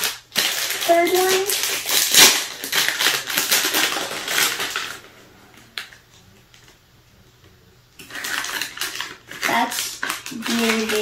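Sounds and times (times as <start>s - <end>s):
plastic wrapper crinkling and tearing: 0.0s - 5.1s, 8.0s - 11.0s.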